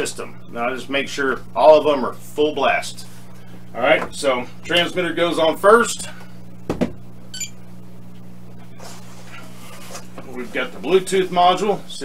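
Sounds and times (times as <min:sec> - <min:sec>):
steady low hum: 0:00.0 - 0:12.0
short electronic beep: 0:07.3 - 0:07.6.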